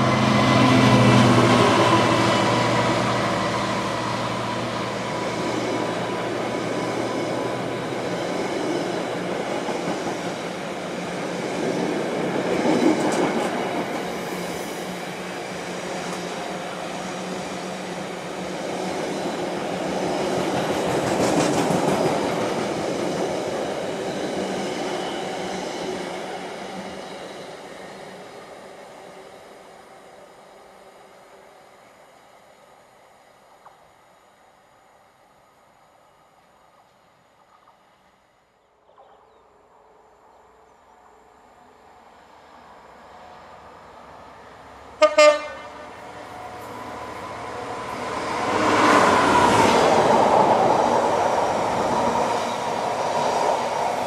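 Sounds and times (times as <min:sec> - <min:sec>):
diesel locomotive engine: 0:00.0 - 0:38.0, 0:40.7 - 0:54.0.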